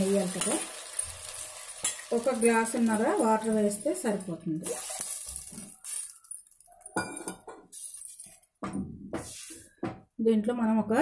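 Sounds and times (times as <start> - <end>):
metal vessels clinking: 0.3 - 8.4.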